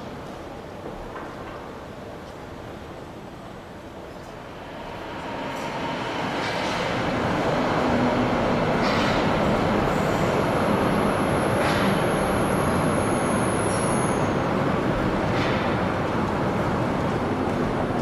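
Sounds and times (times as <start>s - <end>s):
train rumbling: 3.6s - 18.0s
high wheel squeal: 12.4s - 14.4s.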